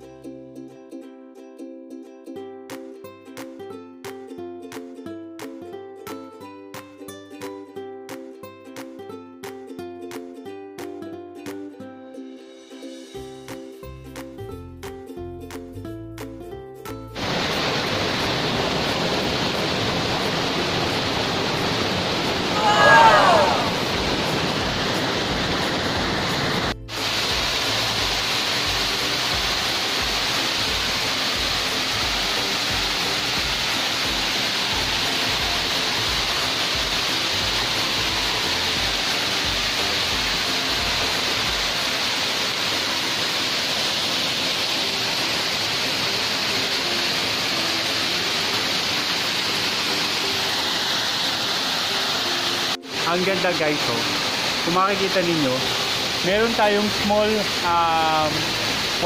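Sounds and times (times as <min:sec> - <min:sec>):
waterfall rushing over rocks: 0:17.2 - 0:59.0.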